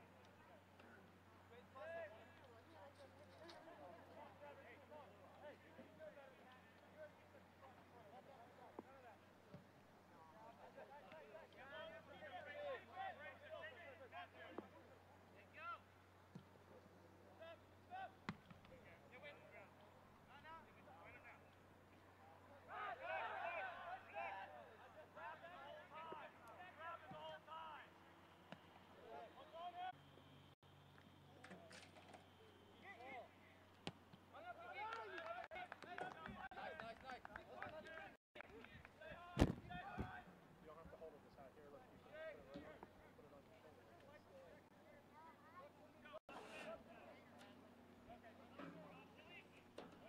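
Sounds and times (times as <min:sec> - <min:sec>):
faint shouts of players: 0:22.4 - 0:27.9
sharp thump: 0:39.4 - 0:39.8.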